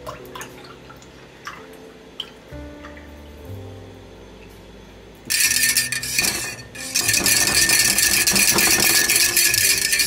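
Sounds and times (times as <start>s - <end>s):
wire whisk clattering in a mug: 5.3s - 10.0s.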